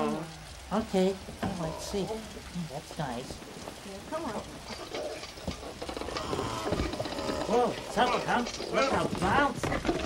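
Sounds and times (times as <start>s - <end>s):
rain hissing: 0.0s - 10.0s.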